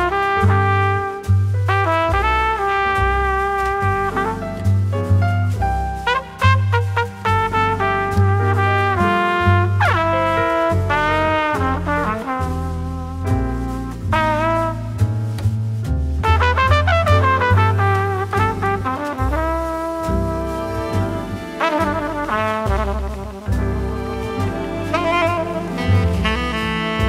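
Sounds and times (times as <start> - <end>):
horn solo: 0.0 - 4.9, 6.0 - 15.1, 16.2 - 27.0
bass: 0.0 - 27.0
piano accompaniment: 0.0 - 27.0.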